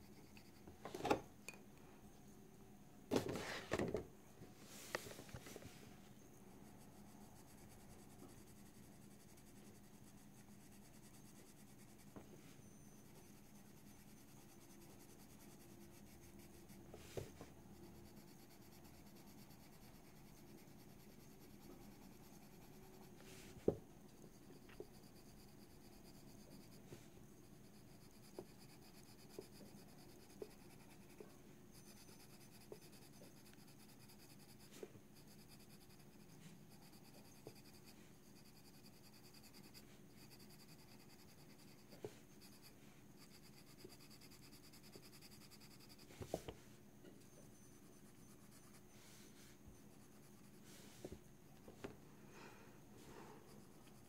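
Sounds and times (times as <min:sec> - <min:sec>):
coloured pencil scratching paper: 0:06.4 - 0:51.9, 0:53.0 - 0:54.0.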